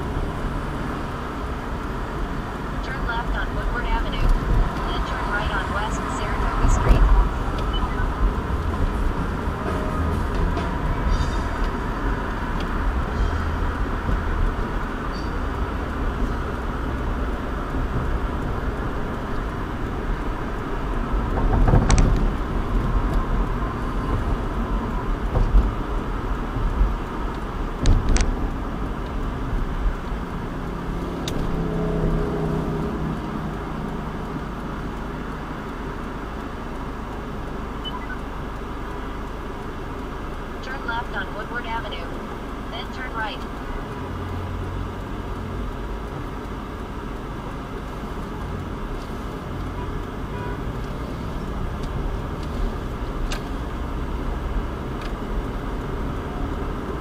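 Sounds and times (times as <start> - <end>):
car road and engine noise: 0.0 - 57.0.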